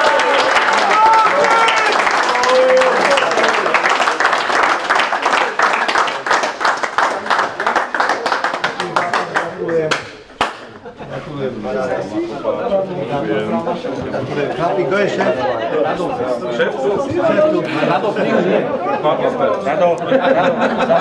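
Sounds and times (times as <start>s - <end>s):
people clapping: 0.0s - 10.8s
people talking: 10.7s - 21.0s.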